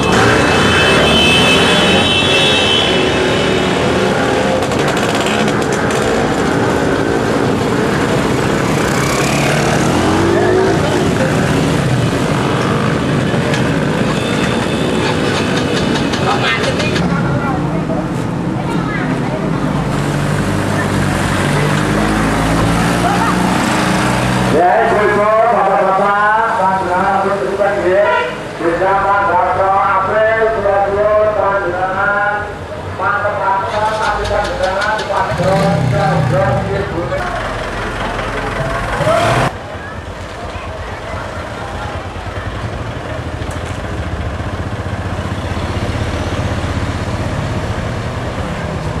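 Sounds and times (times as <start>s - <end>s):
traffic noise: 0.0s - 49.0s
loud wavering voices: 9.6s - 11.9s
voices: 9.7s - 43.6s.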